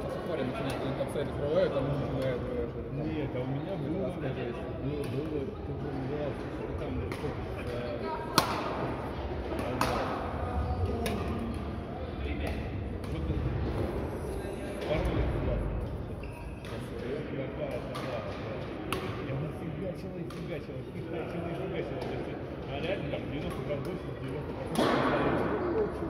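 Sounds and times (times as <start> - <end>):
badminton rackets hitting shuttlecocks: 8.3 - 8.8.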